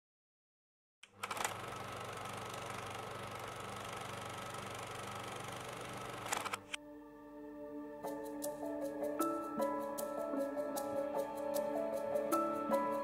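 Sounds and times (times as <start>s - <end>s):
film projector whirring and clattering: 1.0s - 6.7s.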